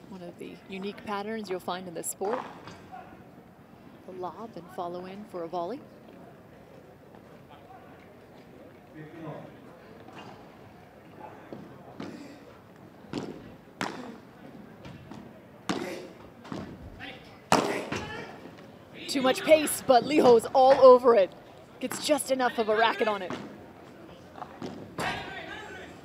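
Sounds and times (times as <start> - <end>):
crowd voices: 0.0 - 26.0.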